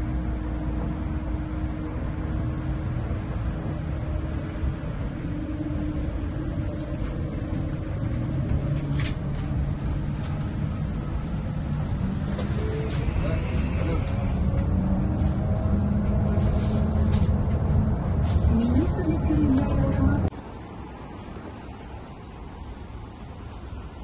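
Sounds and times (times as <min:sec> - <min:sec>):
bus engine and road rumble: 0:00.0 - 0:24.0.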